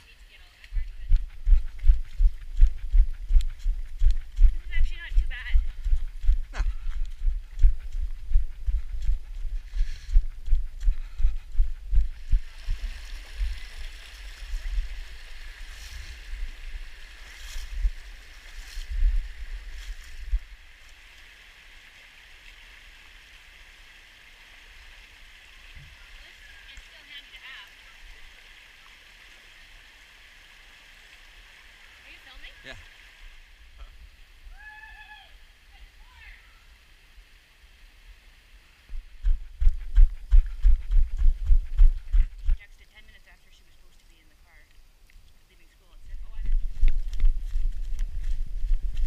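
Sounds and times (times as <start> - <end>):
creek water rushing over rocks: 12.2 - 33.8.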